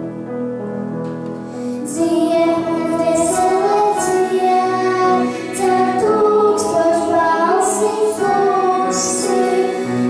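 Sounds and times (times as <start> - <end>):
piano accompaniment: 0.0 - 10.0
mixed choir singing in parts: 2.0 - 10.0.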